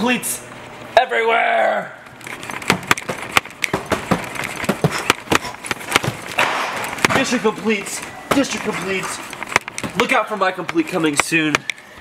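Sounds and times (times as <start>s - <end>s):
boxed parts clicking and knocking: 2.2s - 7.4s, 8.3s - 11.8s.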